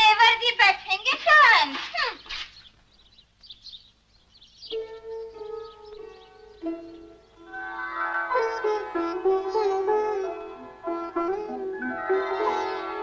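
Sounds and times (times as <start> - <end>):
plucked string background music: 4.7 - 13.0.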